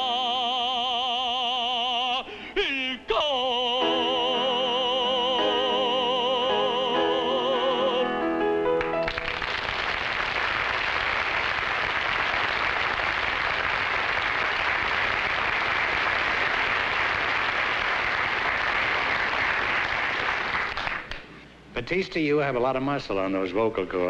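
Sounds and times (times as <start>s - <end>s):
audience applauding: 8.8s - 21.2s.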